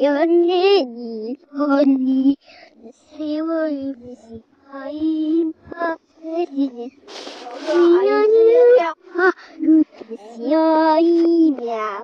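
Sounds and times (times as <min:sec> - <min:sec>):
child singing: 0:00.0 - 0:12.0.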